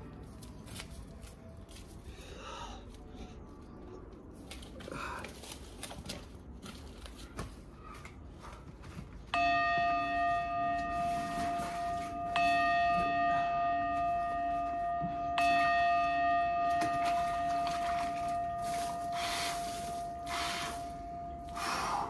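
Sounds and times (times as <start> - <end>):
bell-like chime ringing: 9.3 - 22.0.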